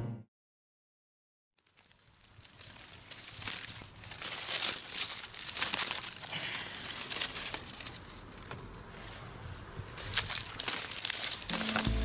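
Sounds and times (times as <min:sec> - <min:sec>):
dry reeds crackling and snapping: 0:01.6 - 0:12.0.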